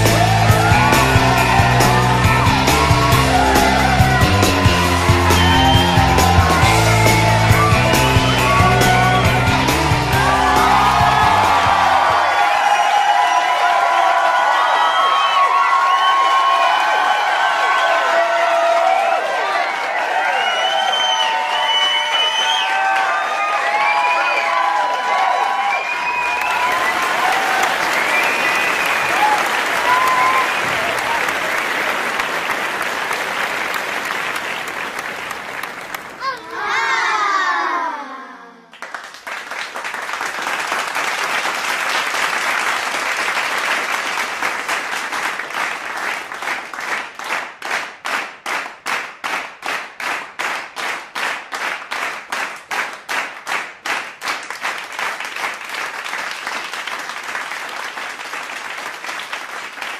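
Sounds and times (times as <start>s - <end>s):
rhythmic clapping in unison: 0.0s - 12.8s, 24.6s - 36.2s, 38.7s - 59.9s
people whooping: 0.0s - 31.6s
crowd cheering and applauding: 0.0s - 37.9s, 38.7s - 59.9s.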